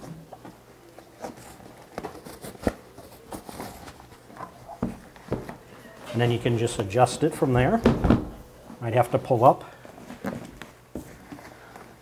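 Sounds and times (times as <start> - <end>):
vinyl cover rustling: 0.0 - 8.7, 9.8 - 12.0.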